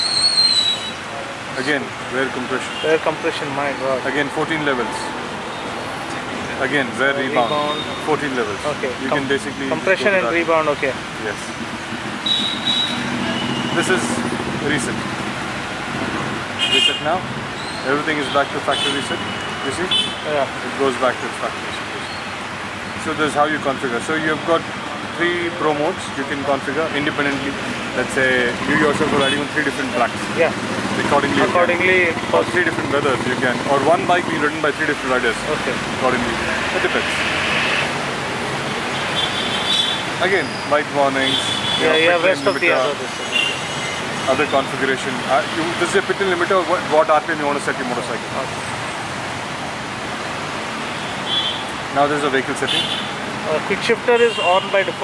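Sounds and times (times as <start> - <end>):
steady background noise: 0.0 - 55.0.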